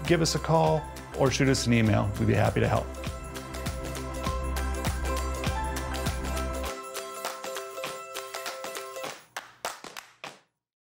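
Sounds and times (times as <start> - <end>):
background music chords: 0.0 - 9.3
clap-like percussion hits: 4.2 - 10.5.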